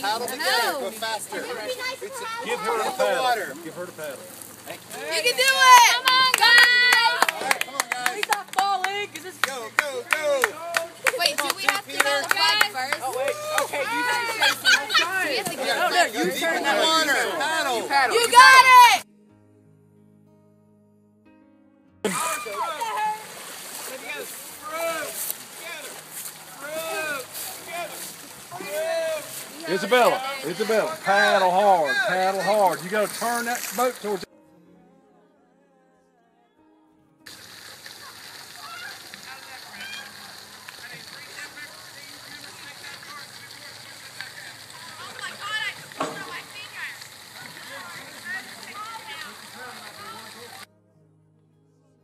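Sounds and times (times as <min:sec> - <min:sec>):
outdoor hiss: 0:00.0 - 0:19.0, 0:22.0 - 0:34.3, 0:37.3 - 0:50.7
paddles splashing water: 0:00.0 - 0:19.0, 0:22.0 - 0:34.3, 0:37.3 - 0:50.7
children calling out: 0:13.2 - 0:19.0, 0:22.1 - 0:23.4, 0:37.9 - 0:40.4.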